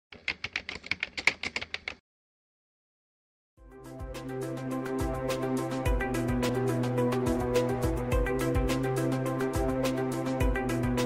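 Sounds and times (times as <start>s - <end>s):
typewriter key clicks: 0.1s - 2.0s.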